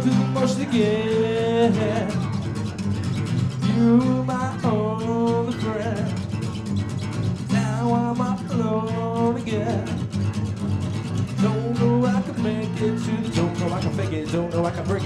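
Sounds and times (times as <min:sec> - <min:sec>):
electric bass: 0:00.0 - 0:15.0
strummed acoustic guitar: 0:00.0 - 0:15.0.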